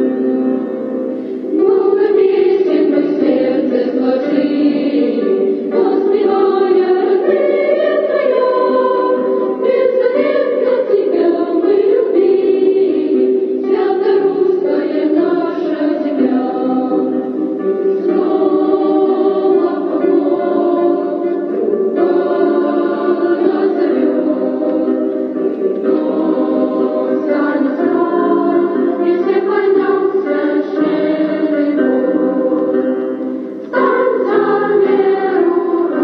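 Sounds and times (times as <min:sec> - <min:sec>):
choir singing: 0:00.0 - 0:36.0.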